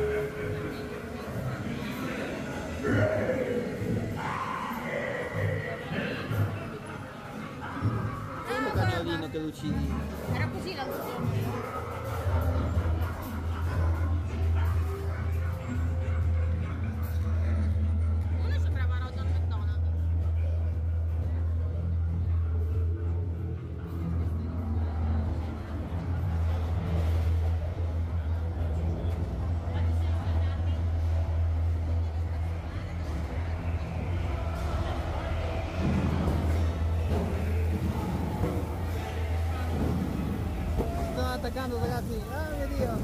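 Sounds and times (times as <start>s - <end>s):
faint soundtrack music: 0.0s - 43.0s
indistinct voices: 0.0s - 43.0s.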